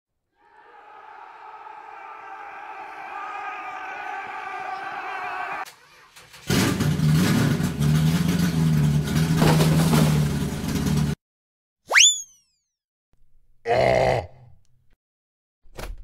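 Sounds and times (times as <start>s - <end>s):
growl sound effect: 13.7s - 14.5s.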